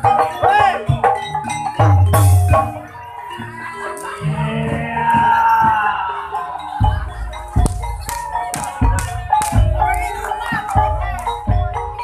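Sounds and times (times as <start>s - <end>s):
ringing metallophone tones: 0.0s - 12.0s.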